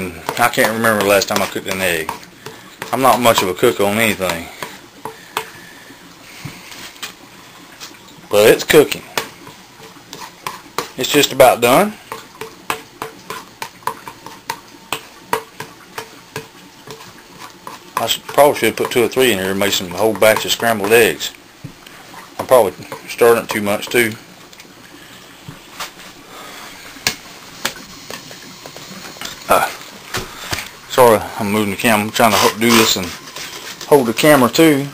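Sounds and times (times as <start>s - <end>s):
utensil tapping a pan: 0.0s - 5.6s, 9.2s - 11.3s, 12.1s - 21.8s
egg frying in a pan: 0.0s - 34.0s
faint steady hiss: 0.0s - 34.9s.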